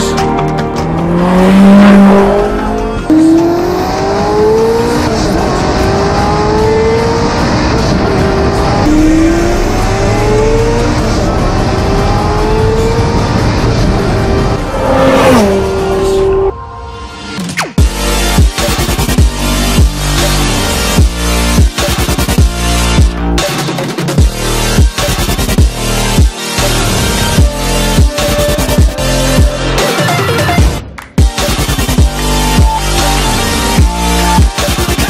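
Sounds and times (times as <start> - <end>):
car engine accelerating through gears: 0.8 - 16.5.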